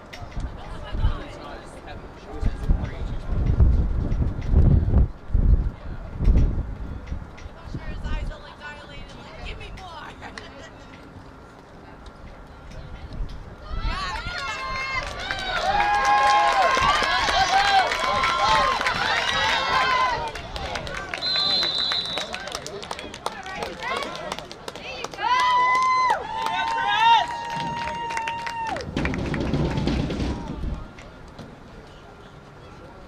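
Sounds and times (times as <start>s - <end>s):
voices shouting and cheering: 13.6s - 31.2s
referee's whistle blast: 21.2s - 22.3s.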